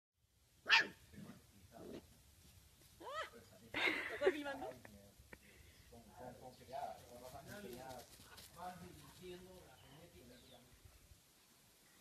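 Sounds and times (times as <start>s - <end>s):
puppy yapping: 0.7s - 1.0s.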